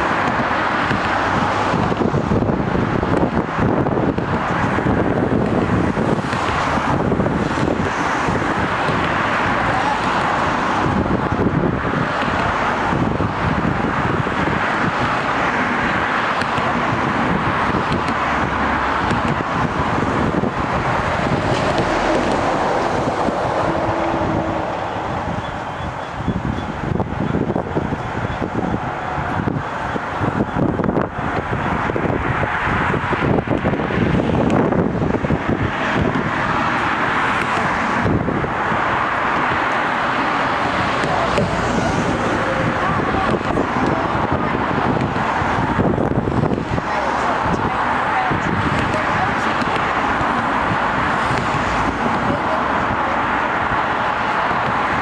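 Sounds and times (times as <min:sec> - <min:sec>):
low rumble of vehicles: 0:00.0 - 0:55.0
wind buffeting microphone: 0:00.0 - 0:55.0.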